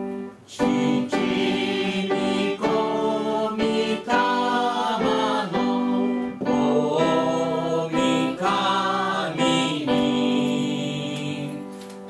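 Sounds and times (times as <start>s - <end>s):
held piano chord: 0.0s - 12.0s
piano accompaniment: 0.0s - 12.0s
congregation singing a hymn: 0.5s - 12.0s.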